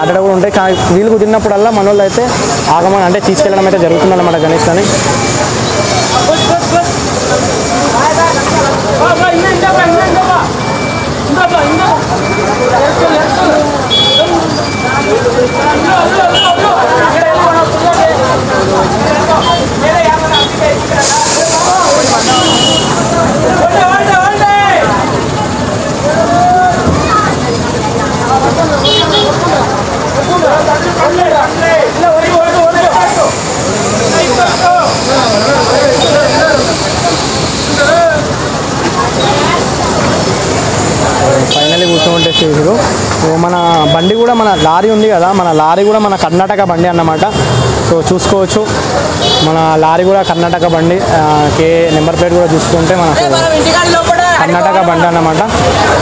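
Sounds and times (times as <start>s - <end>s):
man talking: 0.0s - 5.1s, 41.2s - 56.0s
busy street noise: 0.0s - 56.0s
people talking over one another: 0.0s - 56.0s
vehicle engine running: 4.6s - 44.1s
shrill high-pitched tone: 43.4s - 45.2s.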